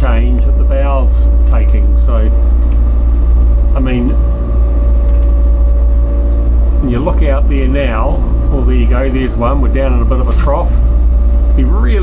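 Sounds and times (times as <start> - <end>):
diesel engine droning: 0.0 - 12.0
steady hum: 0.0 - 12.0.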